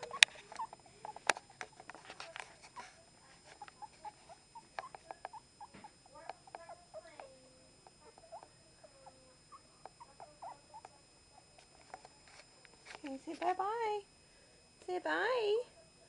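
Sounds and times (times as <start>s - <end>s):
puppies squeaking and whining: 0.0s - 6.0s.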